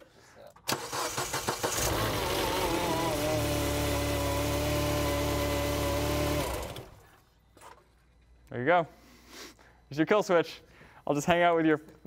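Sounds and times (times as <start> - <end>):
car starter cranking: 0.6 - 3.2.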